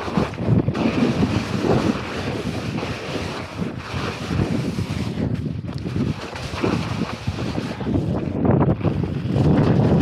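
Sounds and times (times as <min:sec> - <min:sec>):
wind rushing over microphone: 0:00.0 - 0:10.0.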